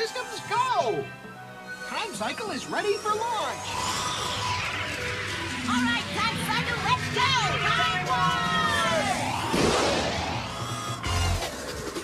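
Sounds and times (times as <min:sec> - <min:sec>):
cartoon music: 0:00.0 - 0:09.6
rising sweeping effect: 0:02.9 - 0:12.0.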